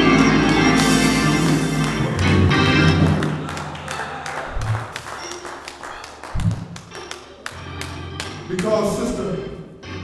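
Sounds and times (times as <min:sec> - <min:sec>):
soft church organ music: 0:00.0 - 0:10.0.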